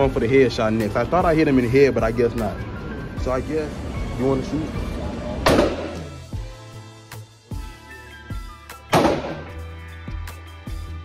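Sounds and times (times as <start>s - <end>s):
background music: 0.0s - 11.0s
loud gunshot ringing: 5.4s - 6.0s, 8.9s - 9.6s.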